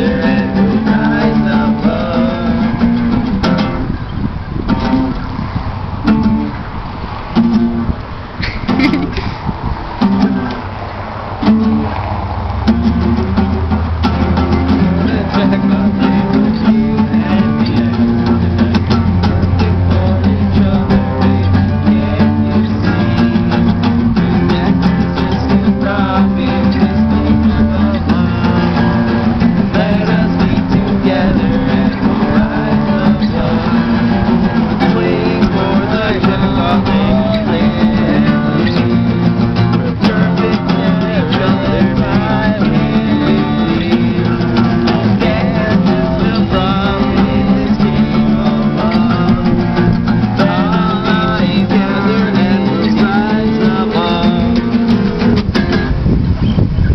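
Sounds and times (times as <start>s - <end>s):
acoustic guitars strumming: 0.0s - 56.9s
low bass notes: 0.0s - 56.9s.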